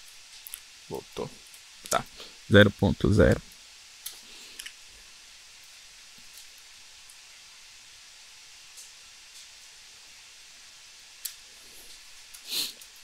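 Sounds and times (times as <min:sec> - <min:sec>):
microphone hiss: 0:00.0 - 0:13.0.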